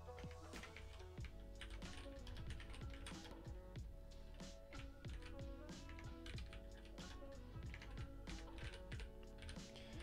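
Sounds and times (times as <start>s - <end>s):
quiet background music: 0.0s - 10.0s
computer keyboard typing: 0.1s - 3.4s, 4.7s - 5.3s, 5.9s - 10.0s.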